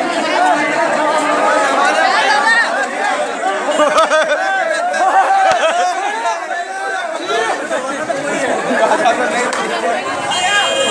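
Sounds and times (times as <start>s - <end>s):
crowd of men babbling: 0.0s - 10.9s.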